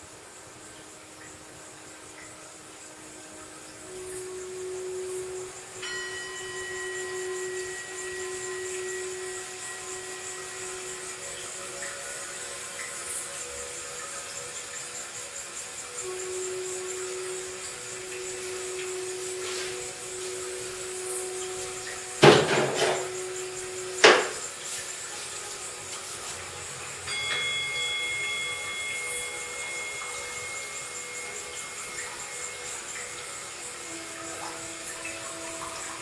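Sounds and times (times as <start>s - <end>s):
ambient synth music: 0.0s - 36.0s.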